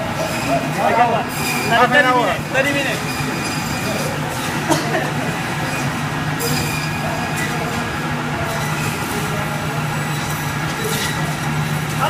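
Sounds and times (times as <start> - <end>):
meat band saws running: 0.0 - 12.0.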